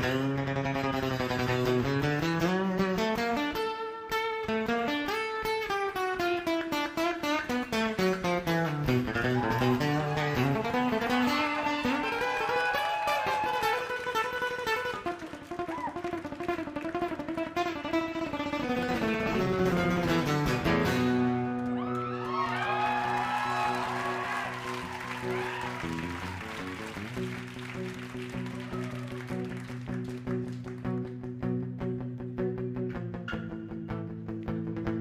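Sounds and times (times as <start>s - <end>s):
acoustic guitar solo: 0.0s - 22.2s
live acoustic band music: 0.0s - 31.6s.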